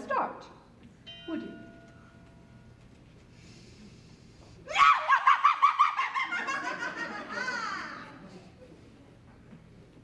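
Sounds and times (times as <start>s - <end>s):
person yelping rapidly: 4.7s - 6.0s.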